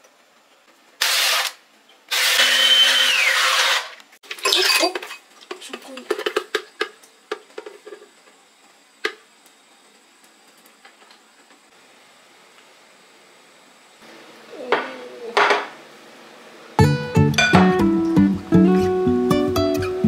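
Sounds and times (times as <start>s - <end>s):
countertop blender running: 1.0s - 4.0s.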